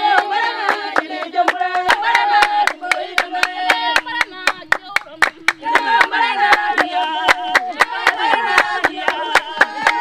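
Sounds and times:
hands clapping rhythmically: 0:00.0 - 0:10.0
women singing together: 0:00.0 - 0:10.0.

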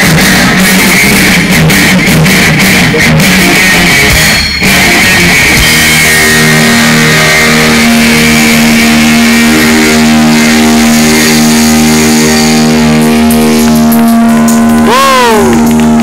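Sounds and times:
rock band sustained chord: 0:00.0 - 0:16.0.

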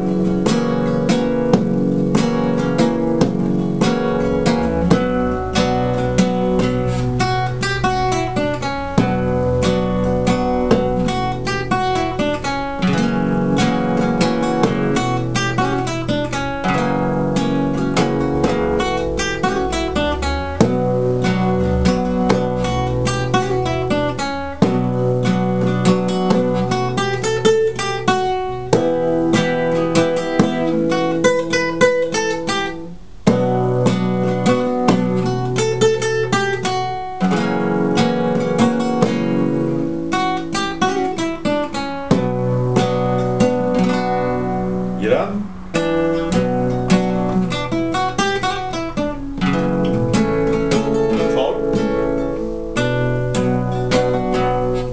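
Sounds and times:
classical guitar playing rumba: 0:00.0 - 0:54.9.

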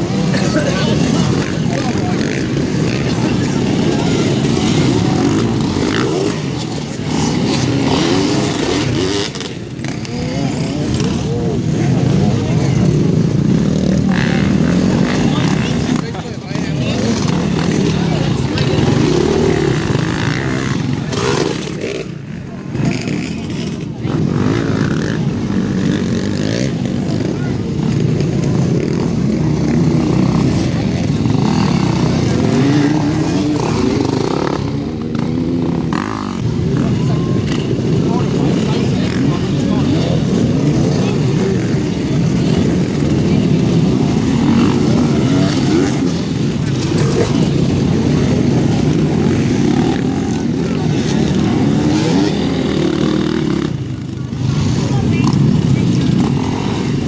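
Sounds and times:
dirt bike engines revving: 0:00.0 - 0:57.0.

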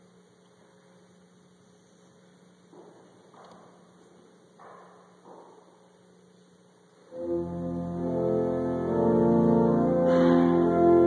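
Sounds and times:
church organ chord: 0:07.1 - 0:11.0.

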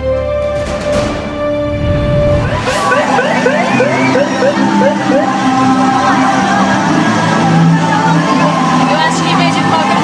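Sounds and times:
trucks passing: 0:01.4 - 0:05.9
crowd voices: 0:02.2 - 0:10.0.

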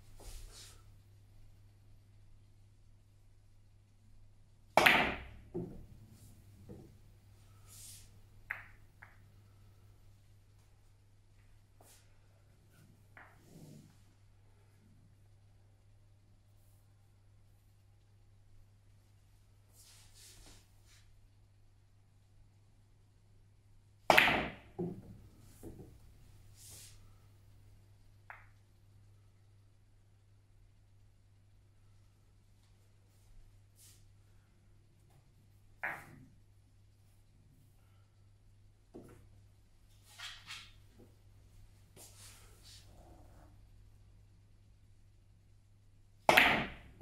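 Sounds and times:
billiard balls knocking: 0:04.8 - 0:06.0, 0:24.1 - 0:26.0, 0:46.3 - 0:47.0
cue striking ball: 0:46.3 - 0:46.8.

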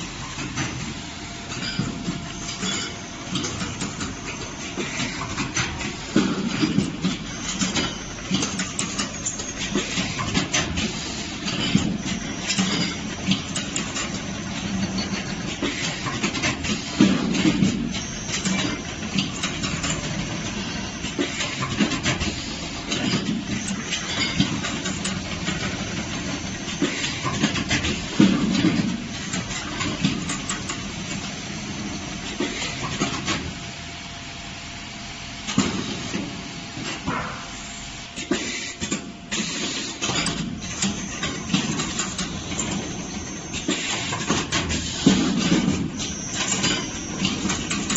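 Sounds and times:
machine motor hum: 0:39.3 - 0:47.9.

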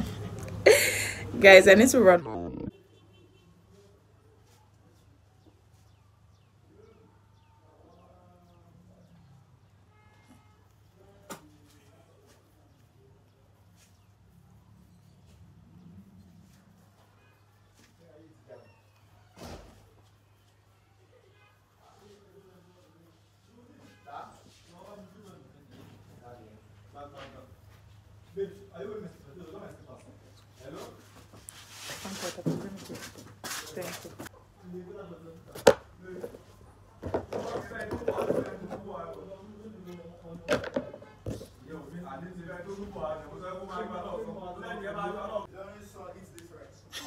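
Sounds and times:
voices talking: 0:00.0 - 0:03.6.

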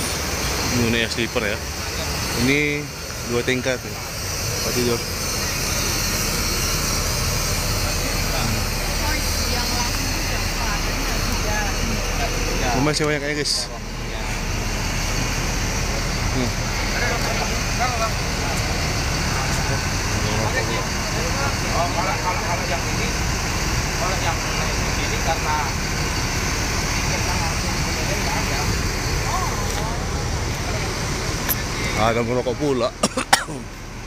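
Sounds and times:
people talking: 0:00.0 - 0:33.8
diesel bus engines idling: 0:00.0 - 0:34.0.

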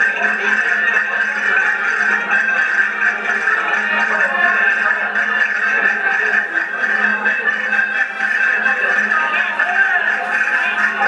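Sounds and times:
accordion playing folk dance tune: 0:00.0 - 0:11.0.

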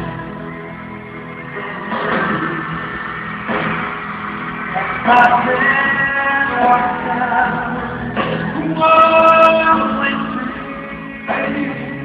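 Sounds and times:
crowd noise wash: 0:00.0 - 0:12.0
live piano ballad with male singer: 0:04.6 - 0:12.0.

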